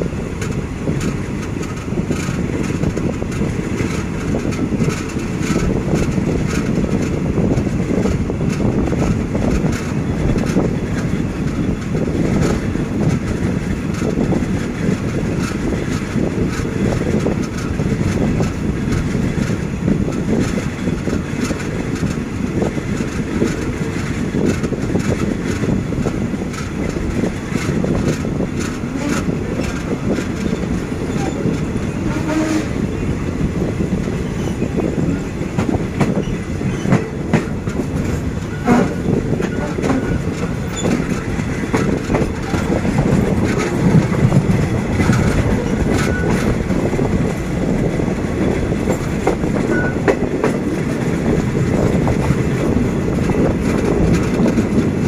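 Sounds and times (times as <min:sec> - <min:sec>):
train clicks and clacks: 0:00.0 - 0:55.0
train wheels rumbling on rail: 0:00.0 - 0:55.0.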